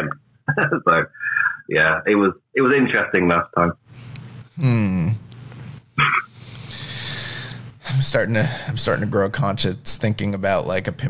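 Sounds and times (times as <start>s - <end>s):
man laughing: 0.5s - 1.7s
short vocal burst: 4.6s - 5.2s
breathy hiss: 6.3s - 8.8s.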